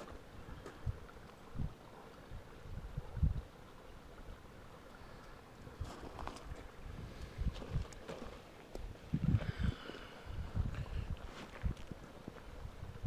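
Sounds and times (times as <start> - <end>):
wind rumbling on microphone: 0.0 - 3.6, 5.6 - 13.0.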